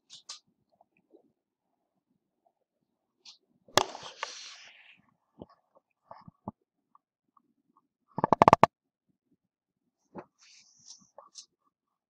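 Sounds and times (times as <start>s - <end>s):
sharp knocks and taps: 8.2s - 8.7s.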